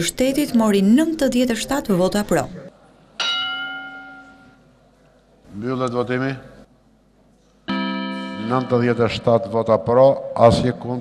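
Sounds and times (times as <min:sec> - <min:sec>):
bell-like chime: 0:07.7 - 0:09.2.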